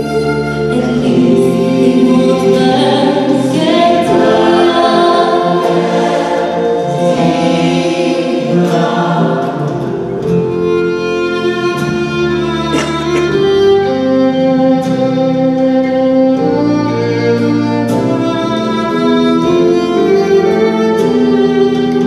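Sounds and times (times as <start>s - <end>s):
gospel choir singing: 0.0s - 11.1s
live band playing: 0.0s - 22.0s
female soloist singing: 0.7s - 9.9s.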